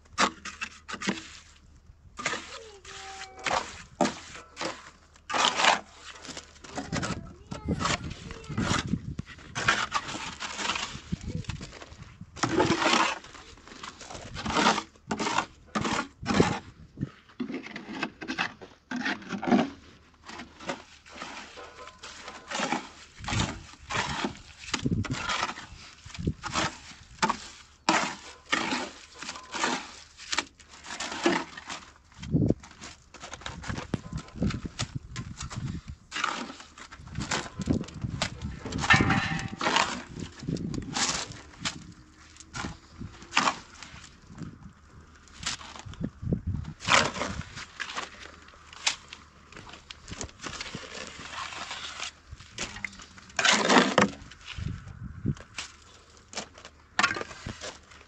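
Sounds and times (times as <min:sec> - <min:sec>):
trowel scraping mortar: 0:00.1 - 0:32.0, 0:32.6 - 0:44.5, 0:46.7 - 0:54.8, 0:55.5 - 0:58.0.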